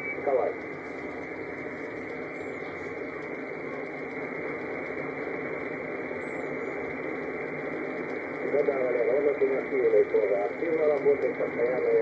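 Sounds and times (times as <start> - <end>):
shortwave radio static: 0.0 - 12.0.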